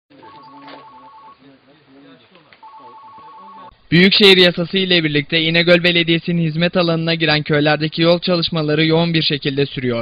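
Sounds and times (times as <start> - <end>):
phone ringing electronic trill: 0.1 - 1.4, 2.6 - 3.7
men talking: 0.1 - 10.0.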